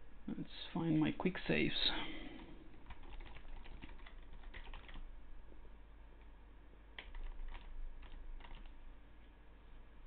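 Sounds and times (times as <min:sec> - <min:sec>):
computer keyboard typing: 0:02.7 - 0:05.1, 0:07.0 - 0:08.8.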